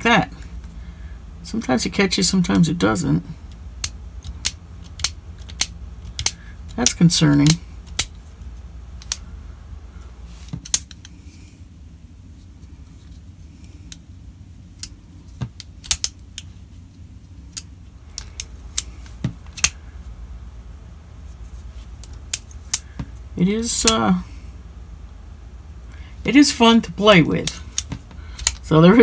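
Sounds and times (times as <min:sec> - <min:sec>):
folding knife clicking: 0:03.8 - 0:07.0.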